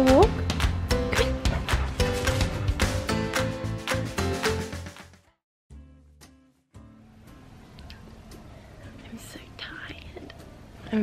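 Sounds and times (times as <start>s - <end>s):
woman whispering: 8.8s - 10.3s.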